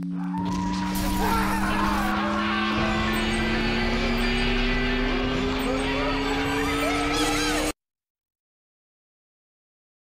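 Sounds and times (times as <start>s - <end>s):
two-note drone rising in pitch: 0.0s - 7.7s.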